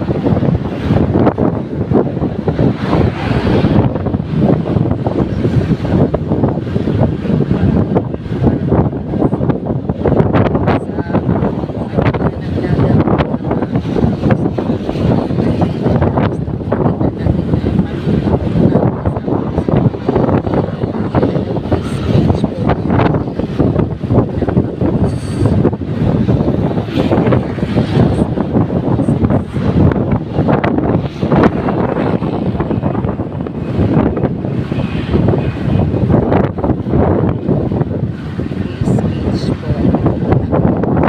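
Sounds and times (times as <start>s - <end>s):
moving vehicle rumble: 0.0s - 41.0s
wind buffeting microphone: 0.0s - 41.0s.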